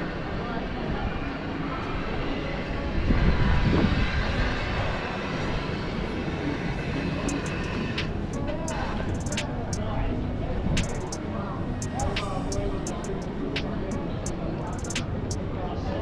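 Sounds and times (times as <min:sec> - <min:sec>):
passers-by talking: 0:00.0 - 0:16.0
sharp clicks: 0:09.1 - 0:09.6, 0:10.8 - 0:11.2, 0:14.8 - 0:15.1.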